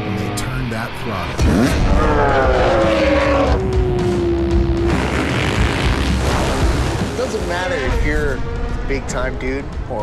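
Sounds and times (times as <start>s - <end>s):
dirt bike engines roaring: 0.0s - 7.9s.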